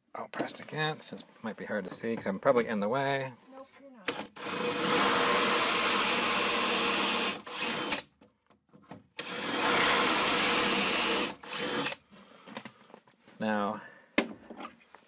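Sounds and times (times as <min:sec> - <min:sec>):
electric drill boring into wood: 0:04.1 - 0:08.1, 0:09.2 - 0:12.0.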